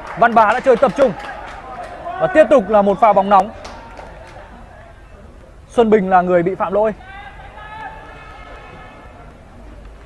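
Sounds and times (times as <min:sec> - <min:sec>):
distant players' voices: 0:00.0 - 0:10.0
faint stadium ambience: 0:00.0 - 0:10.0.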